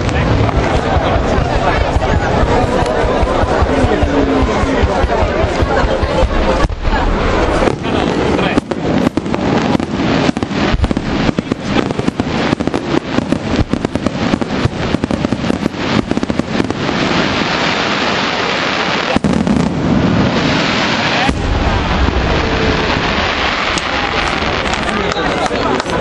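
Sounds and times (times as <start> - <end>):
crackling noise: 0.0 - 26.0
fireworks bursting: 0.0 - 26.0.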